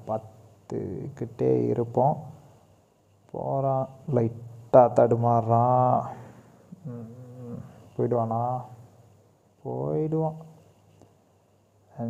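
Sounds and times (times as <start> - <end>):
man humming a drawn-out vowel: 5.4 - 8.8.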